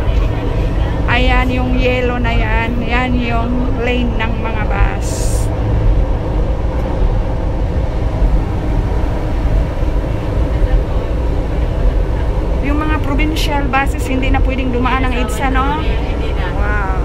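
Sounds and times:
train rumbling from inside carriage: 0:00.0 - 0:17.0.

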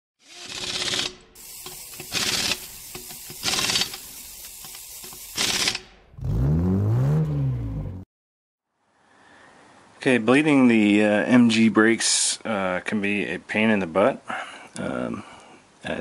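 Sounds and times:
mechanical clicking and ratcheting: 0:00.2 - 0:06.0
loud low tone rising and falling: 0:06.1 - 0:08.1.

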